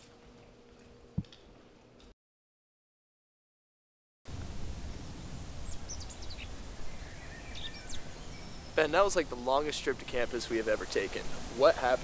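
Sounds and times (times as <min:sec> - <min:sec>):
steady low rumble: 0:04.3 - 0:12.0
bird chirps: 0:05.6 - 0:09.0.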